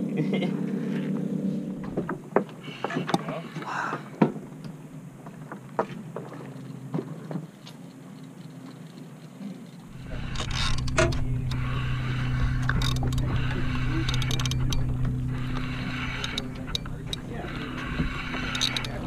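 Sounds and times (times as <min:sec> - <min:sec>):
boat engine droning: 0:00.0 - 0:19.0.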